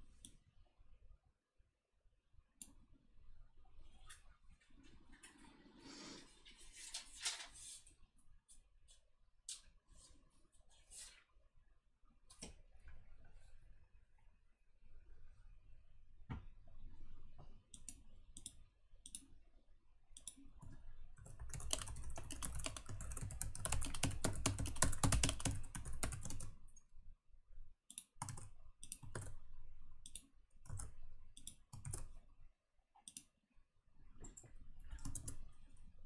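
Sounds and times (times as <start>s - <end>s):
computer keyboard typing: 20.2s - 26.8s, 27.9s - 29.5s, 30.1s - 32.2s, 34.2s - 35.5s.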